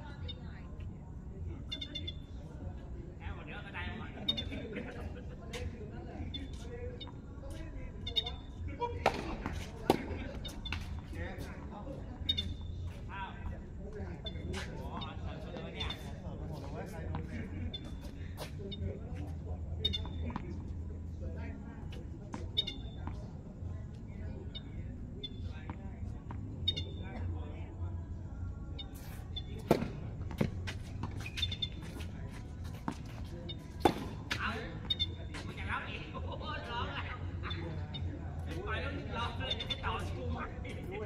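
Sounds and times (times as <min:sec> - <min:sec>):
voices: 0:00.0 - 0:41.0
tennis balls struck by rackets: 0:09.0 - 0:11.1, 0:29.6 - 0:32.0, 0:33.8 - 0:35.1.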